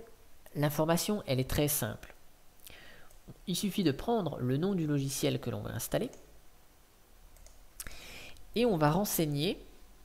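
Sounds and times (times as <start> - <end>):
computer mouse clicking: 7.3 - 7.9.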